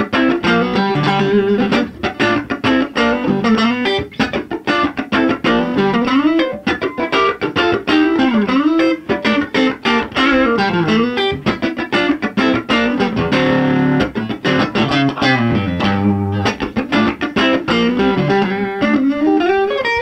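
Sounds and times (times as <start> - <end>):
clean electric guitar funk riff: 0.0 - 20.0.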